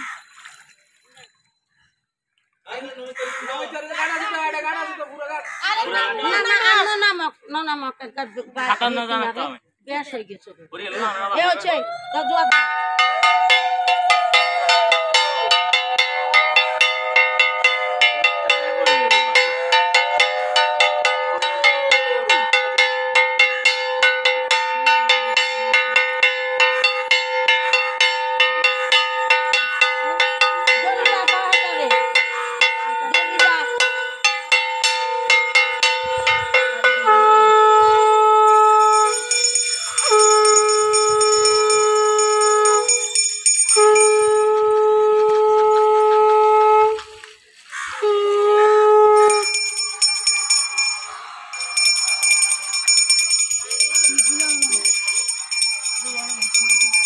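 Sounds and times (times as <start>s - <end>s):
metal bell struck rapidly: 12.5s - 37.1s, 38.6s - 44.5s, 49.3s - 57.0s
conch shell blasts: 25.0s - 45.4s, 48.0s - 54.2s.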